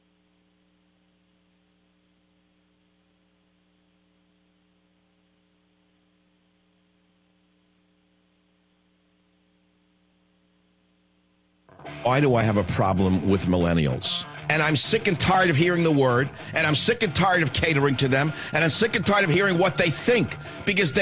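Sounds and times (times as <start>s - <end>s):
faint electrical hum: 0.0s - 11.8s.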